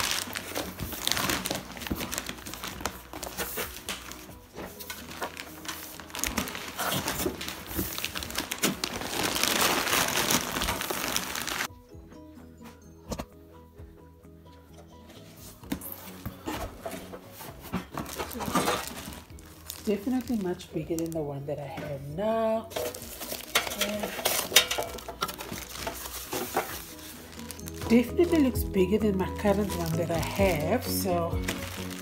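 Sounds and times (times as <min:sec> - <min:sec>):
paper and cardboard crinkling: 0:00.0 - 0:11.7, 0:15.1 - 0:32.0
faint music: 0:00.0 - 0:32.0.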